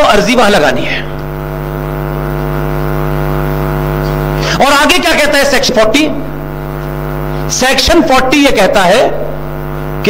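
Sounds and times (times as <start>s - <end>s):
loud buzzing drone: 0.0s - 10.0s.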